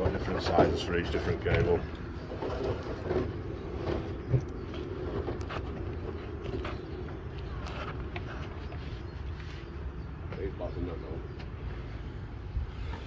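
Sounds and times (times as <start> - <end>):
low engine rumble: 0.0 - 13.0.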